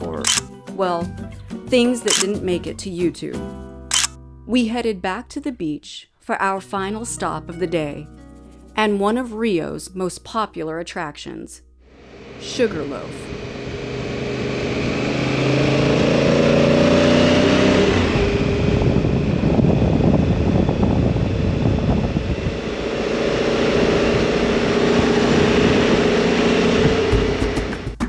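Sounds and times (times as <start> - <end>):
motorcycle engine running: 12.0 - 28.0
rushing wind noise: 13.2 - 27.8
percussive music beat: 27.1 - 28.0.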